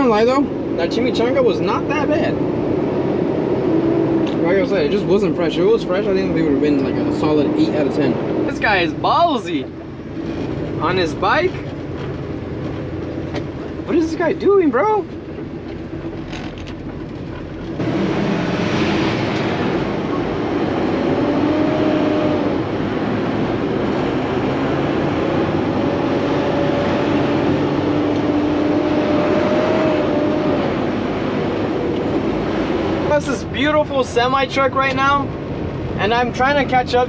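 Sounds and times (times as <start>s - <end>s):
diesel engine drone: 0.0s - 37.0s
road noise: 0.0s - 37.0s.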